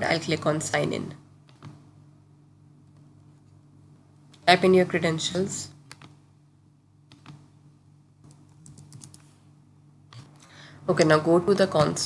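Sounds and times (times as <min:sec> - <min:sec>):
computer keyboard typing: 0:01.5 - 0:01.8, 0:05.8 - 0:06.2, 0:07.1 - 0:07.4, 0:08.3 - 0:09.3.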